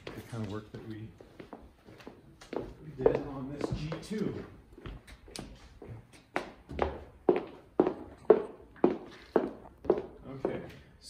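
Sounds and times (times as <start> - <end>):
footsteps on wooden floor: 0.0 - 10.7.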